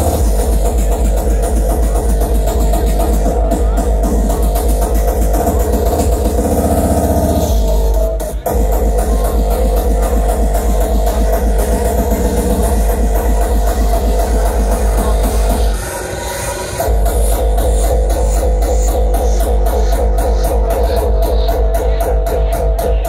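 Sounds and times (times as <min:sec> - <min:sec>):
fast kick drum: 0:00.0 - 0:15.8, 0:16.8 - 0:23.0.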